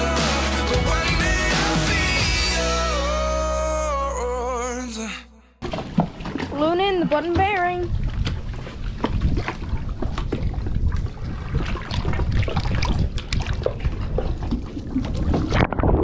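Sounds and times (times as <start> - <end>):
water sloshing and splashing: 5.6 - 16.0.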